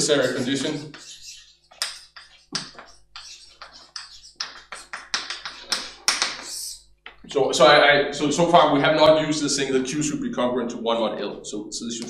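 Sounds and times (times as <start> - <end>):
chalk writing on blackboard: 0.0 - 6.8.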